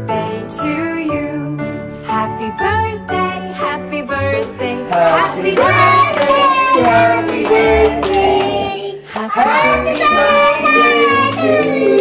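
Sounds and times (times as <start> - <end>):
children singing: 4.2 - 12.0.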